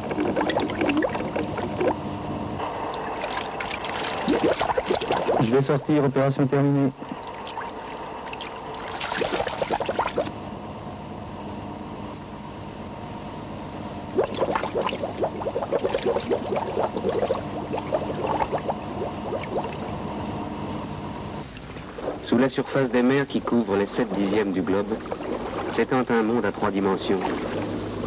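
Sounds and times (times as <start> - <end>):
air bubbling and gurgling underwater: 0.0 - 2.0, 2.9 - 5.6, 7.0 - 10.3, 14.1 - 20.0, 24.3 - 26.0
steady hum: 0.0 - 28.0.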